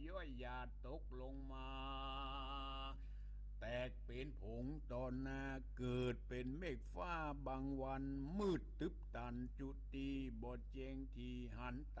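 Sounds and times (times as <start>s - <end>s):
steady low hum: 0.0s - 12.0s
person chanting melodically: 0.6s - 3.0s.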